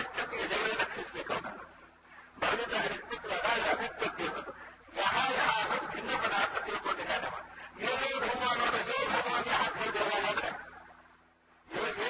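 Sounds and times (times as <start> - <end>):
man talking: 0.0 - 1.7, 2.4 - 10.7, 11.7 - 12.0.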